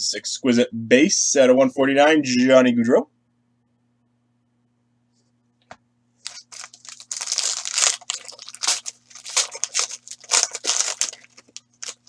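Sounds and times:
faint electrical hum: 0.0s - 12.0s
foil wrapper crinkling: 6.2s - 12.0s.

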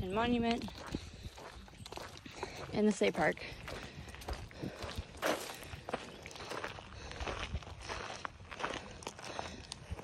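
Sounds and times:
footsteps on gravel: 0.0s - 10.0s.

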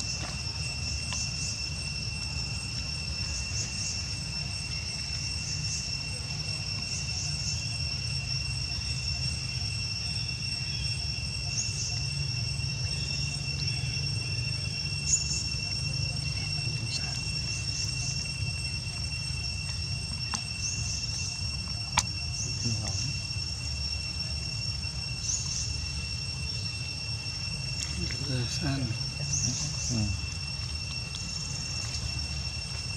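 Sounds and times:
insects calling: 0.0s - 32.9s.

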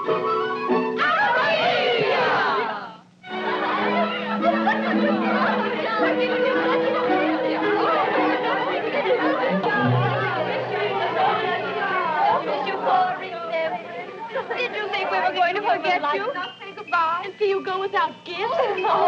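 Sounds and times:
young women chattering and laughing: 3.6s - 19.0s.

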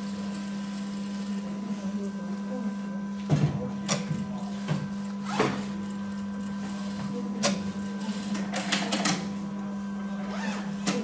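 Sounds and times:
sewing machine motor hum: 0.0s - 1.6s.

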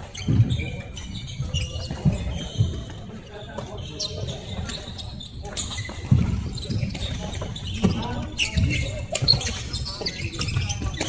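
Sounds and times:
players' voices: 0.0s - 11.0s
shoes squeaking: 0.0s - 11.0s.

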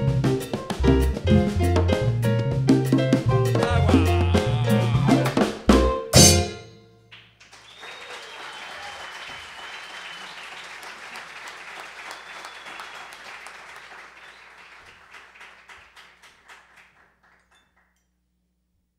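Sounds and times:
audience applauding: 3.6s - 5.5s, 7.1s - 17.9s
high steady whistle: 7.6s - 10.7s.

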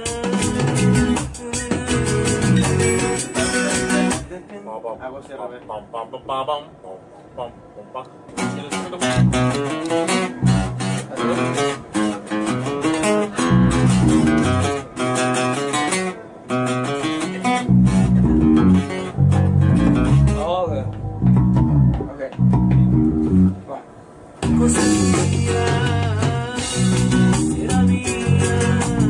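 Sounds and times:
bass guitar line: 0.0s - 4.3s, 8.4s - 23.7s, 24.4s - 29.0s
plucked guitar: 0.0s - 4.3s, 8.2s - 23.7s, 24.4s - 29.0s.

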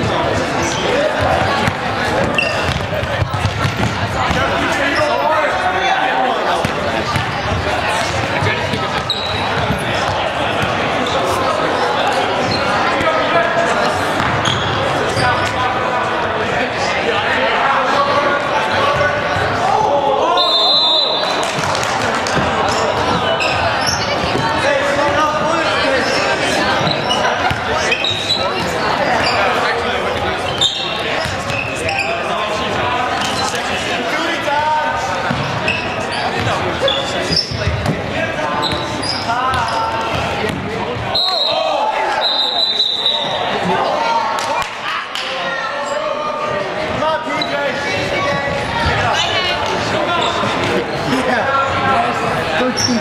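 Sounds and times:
players calling and shouting: 0.0s - 53.0s
sneaker squeaks: 0.7s - 5.4s, 8.4s - 11.2s, 12.4s - 13.2s, 14.1s - 15.6s, 22.3s - 32.4s, 33.2s - 33.7s, 35.2s - 43.5s, 47.3s - 50.8s, 52.6s - 53.0s.

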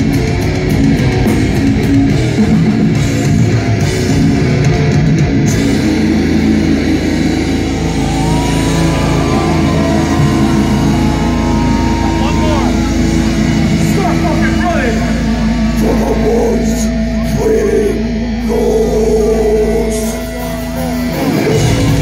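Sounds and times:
guitar and bass amplifier drone: 0.0s - 22.0s
crowd shouting and whooping: 5.7s - 22.0s.

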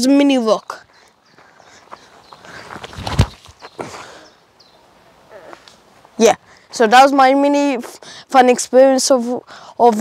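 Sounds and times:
footsteps on bark chips: 0.7s - 4.0s.

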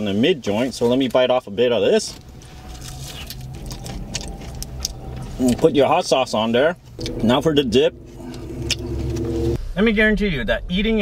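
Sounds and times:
car cabin hum: 2.1s - 9.6s.

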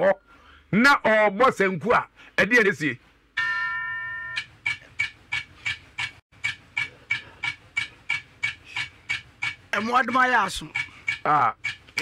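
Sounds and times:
clock-like ticking: 4.3s - 12.0s.

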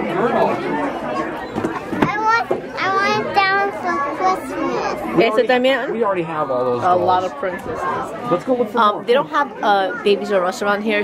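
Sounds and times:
young girl talking: 2.0s - 5.2s.

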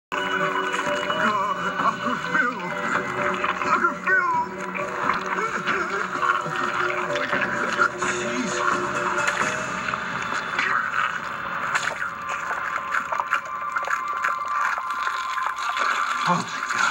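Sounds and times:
tense horror music score: 0.1s - 16.9s.

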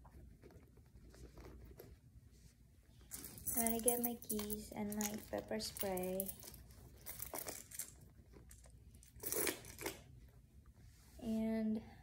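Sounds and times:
handbag rustling: 3.0s - 9.9s
keys clinking and rattling: 3.1s - 10.0s.

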